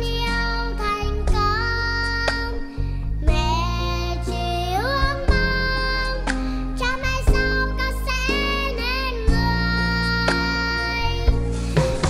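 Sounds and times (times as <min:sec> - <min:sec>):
girl singing: 0:00.0 - 0:11.5
accompanying music: 0:00.0 - 0:12.0.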